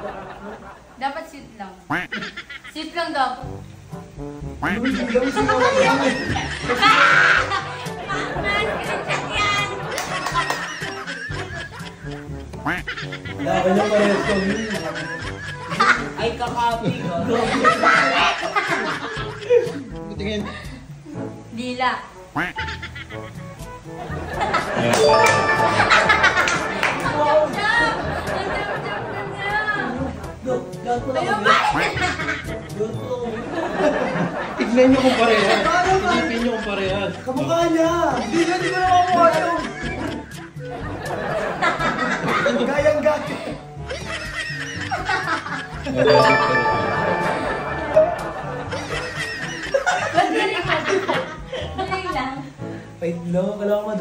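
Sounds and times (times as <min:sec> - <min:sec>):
people laughing and giggling: 0:00.0 - 0:01.0, 0:02.0 - 0:02.9, 0:04.7 - 0:21.2, 0:22.6 - 0:30.4, 0:31.1 - 0:52.4
background music: 0:01.9 - 0:54.0.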